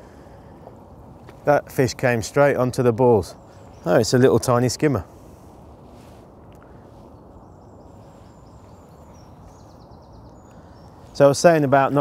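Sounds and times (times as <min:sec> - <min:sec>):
dull outdoor rumble: 0:00.0 - 0:12.0.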